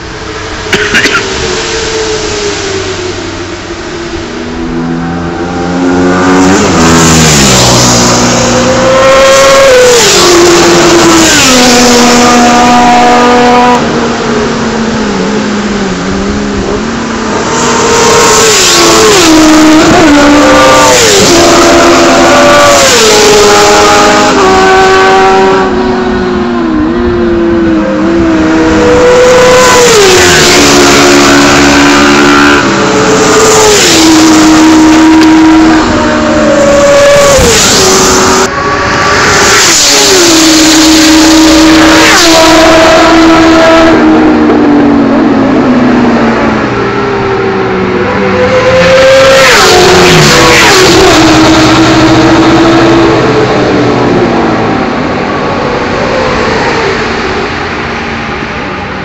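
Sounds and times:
motorcycles passing at racing speed: 0.1 - 59.0.

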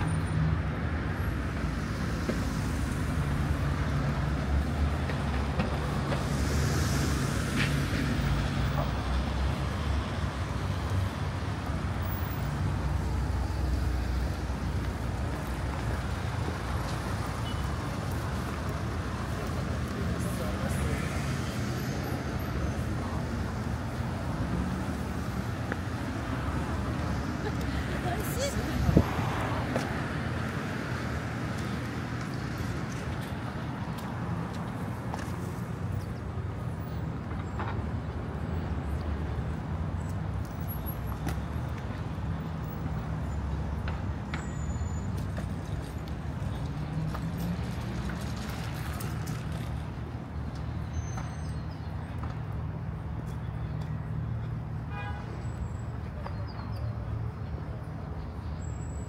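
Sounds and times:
traffic rumble: 0.0 - 59.0.

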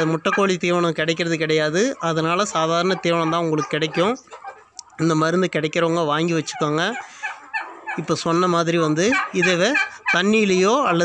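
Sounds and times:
man talking: 0.0 - 7.2, 7.9 - 11.0.

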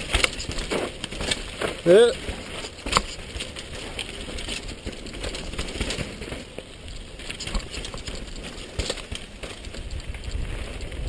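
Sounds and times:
bike rattles and clicks: 0.0 - 11.0
bike tyres rolling on dirt: 0.0 - 11.0.

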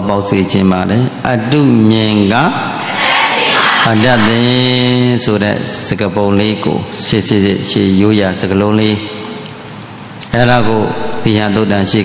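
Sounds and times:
man chanting: 3.8 - 9.1.

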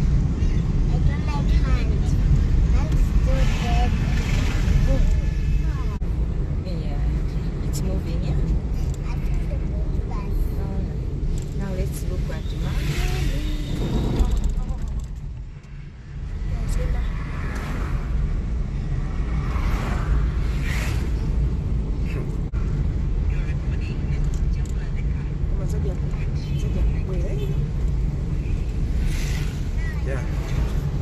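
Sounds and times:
car engine and tyre rumble: 0.0 - 31.0.

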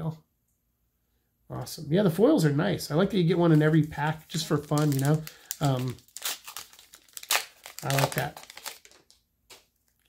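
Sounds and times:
foil wrapper crinkling: 3.5 - 10.0.

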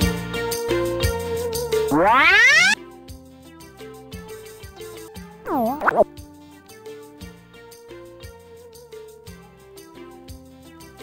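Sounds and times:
comic rising pitch effect: 1.9 - 2.8, 5.5 - 6.1.

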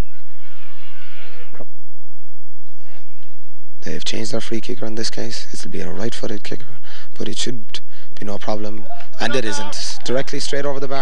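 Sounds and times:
low hum: 0.0 - 11.0
breath near microphone: 6.6 - 7.2, 7.8 - 8.2.

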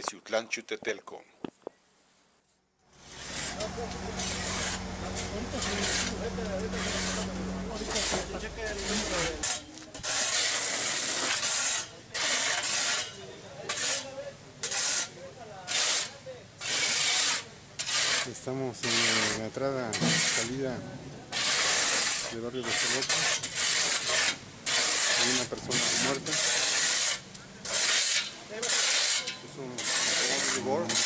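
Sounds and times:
low engine hum: 2.9 - 9.5
metal shovels scraping asphalt: 2.9 - 31.0.

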